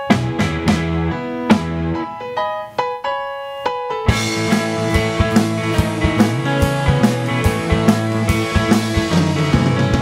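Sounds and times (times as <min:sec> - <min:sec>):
electric piano notes: 0:00.0 - 0:10.0.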